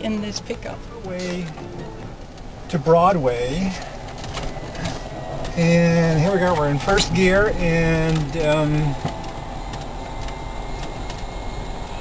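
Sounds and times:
drivetrain and road noise: 0.0s - 12.0s
electric motor high whine: 3.5s - 12.0s.

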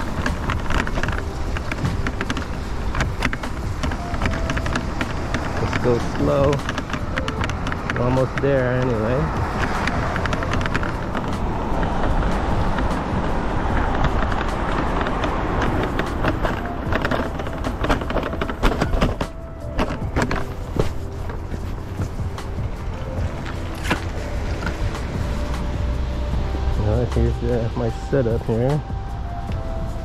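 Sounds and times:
sharp rattling clicks: 0.0s - 29.8s
scooter wheels rumbling on concrete: 0.0s - 30.0s.

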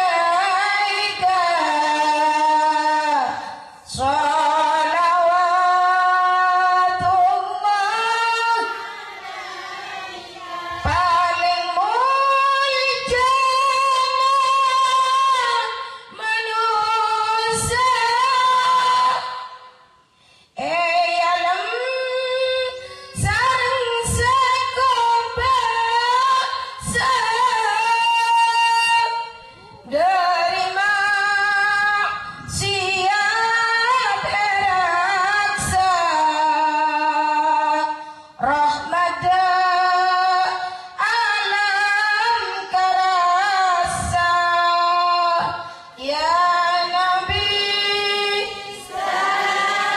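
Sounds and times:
woman singing unaccompanied: 0.0s - 8.9s, 10.7s - 19.5s, 20.6s - 49.9s
singer breathing: 20.0s - 20.6s, 38.0s - 38.4s, 40.6s - 41.0s, 45.6s - 46.0s.

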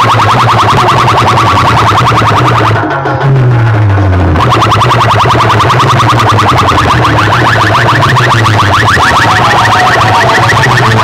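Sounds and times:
electronic siren chirps: 0.0s - 2.9s, 4.1s - 11.0s
deep bass tone: 0.0s - 11.0s.

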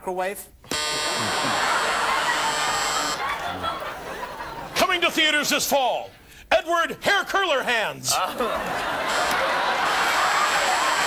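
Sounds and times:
game-show buzzer buzzing: 0.7s - 3.3s, 9.0s - 11.0s
audience laughter: 1.1s - 4.8s, 8.3s - 11.0s.

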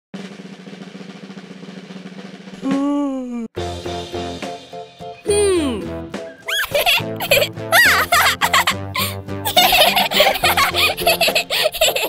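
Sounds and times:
snare drum roll: 0.2s - 2.8s.

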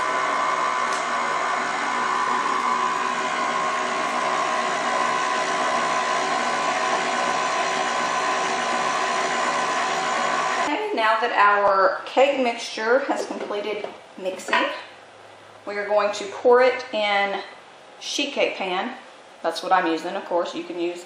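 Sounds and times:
stand mixer motor whining: 0.0s - 10.7s.

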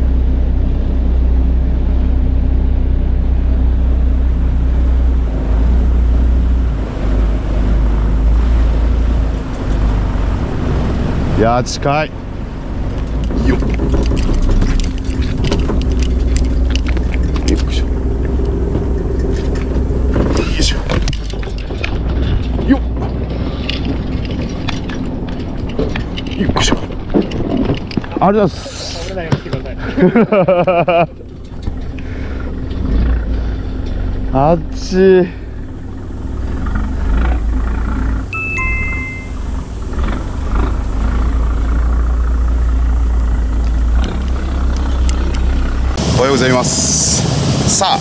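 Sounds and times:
boat engine running: 0.0s - 48.0s
scattered clicks and knocks: 12.9s - 28.3s.

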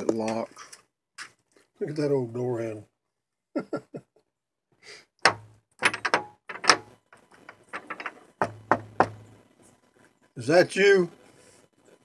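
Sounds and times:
locked door rattling on latch: 5.3s - 6.9s.

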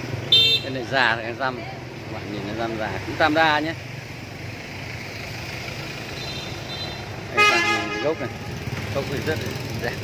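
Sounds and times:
outdoor background noise: 0.0s - 10.0s
vehicle horn: 0.3s - 0.8s, 6.2s - 8.6s.

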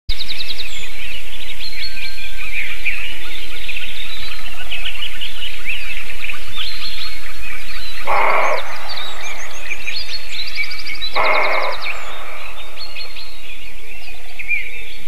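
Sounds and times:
songbirds singing: 0.1s - 15.0s
fast ticking bird trill: 7.6s - 14.4s
steady low hum: 7.7s - 14.6s.

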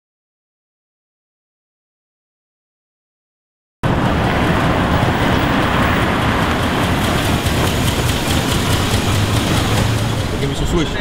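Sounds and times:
car and street noise: 3.8s - 11.0s.

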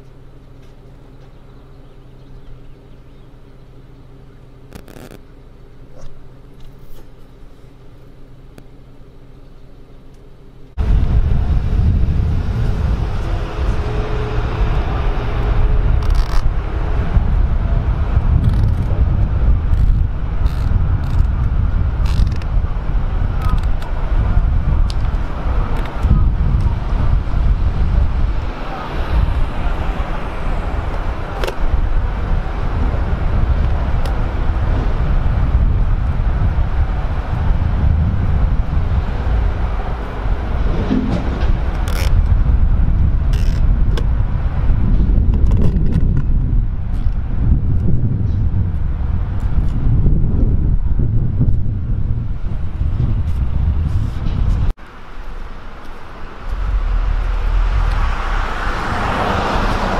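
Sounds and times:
passing traffic: 0.0s - 59.9s
wind rumble on microphone: 10.8s - 59.9s.

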